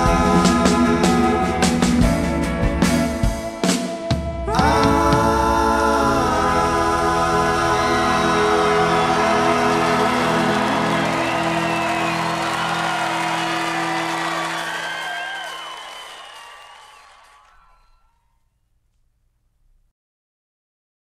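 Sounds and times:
audience whooping and whistling: 0:08.0 - 0:18.1.

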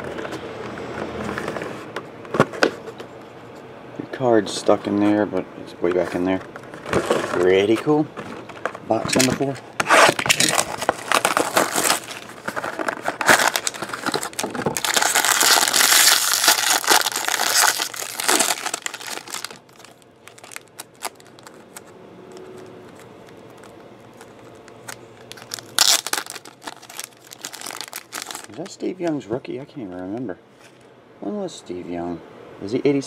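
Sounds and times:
plastic wrap and foil crinkling: 0:06.8 - 0:28.8.

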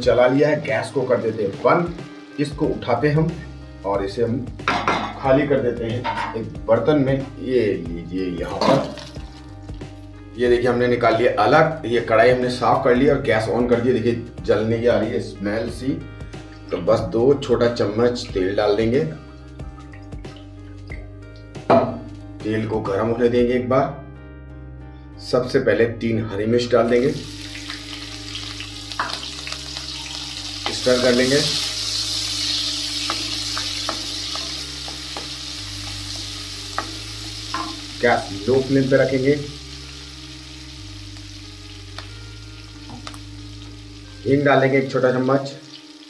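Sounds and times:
chillies sizzling in hot oil: 0:00.0 - 0:06.0, 0:07.4 - 0:10.2, 0:26.8 - 0:46.0
soft background music: 0:00.0 - 0:46.0.

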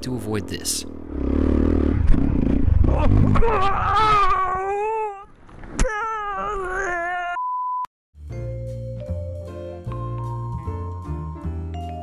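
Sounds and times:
motorcycle engine: 0:00.0 - 0:03.4
person groaning wails: 0:02.9 - 0:05.2.

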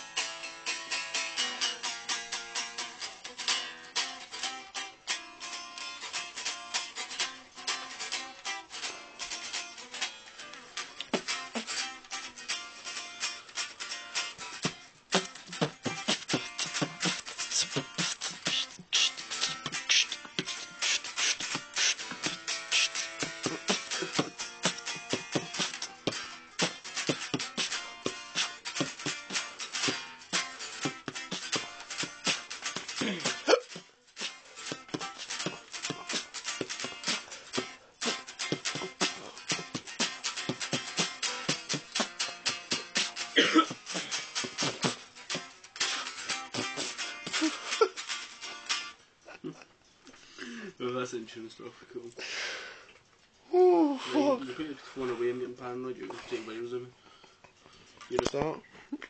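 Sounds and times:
guitar playing: 0:00.0 - 0:49.2.

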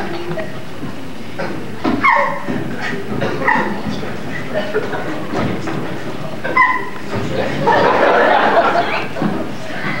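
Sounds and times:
audience laughter: 0:03.6 - 0:05.6, 0:06.4 - 0:09.9.

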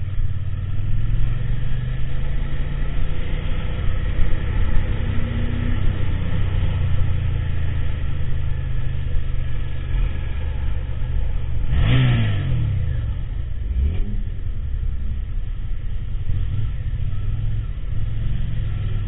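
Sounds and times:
motorcycle engine running: 0:00.0 - 0:19.0
road noise: 0:00.0 - 0:19.0.

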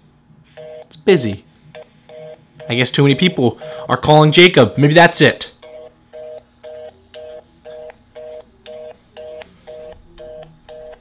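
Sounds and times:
telephone busy signal: 0:00.5 - 0:00.9, 0:01.8 - 0:03.6, 0:05.6 - 0:11.0.

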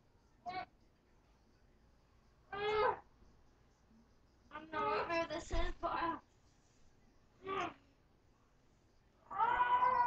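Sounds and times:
quiet rustle: 0:05.2 - 0:09.1.

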